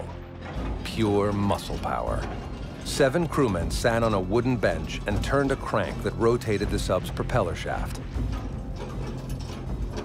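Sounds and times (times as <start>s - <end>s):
gears clicking and ratcheting: 0.0s - 10.0s.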